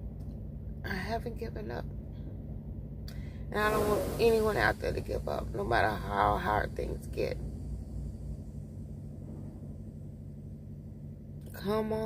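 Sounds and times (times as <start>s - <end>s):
diesel truck engines idling: 2.1s - 12.0s.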